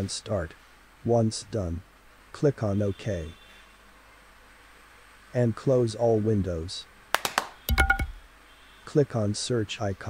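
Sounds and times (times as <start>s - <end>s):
brief ringing tone: 7.7s - 8.2s.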